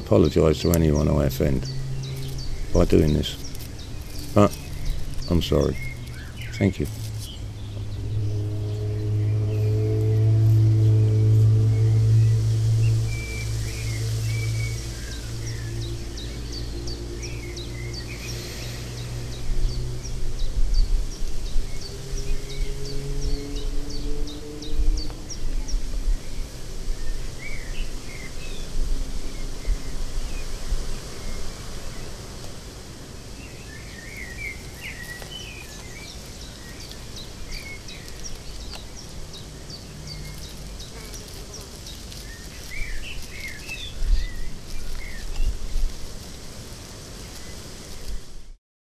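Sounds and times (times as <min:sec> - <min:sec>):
low bumps: 0:00.0 - 0:31.0
small birds chirping: 0:00.0 - 0:32.6, 0:33.3 - 0:48.5
low droning hum: 0:00.0 - 0:48.3.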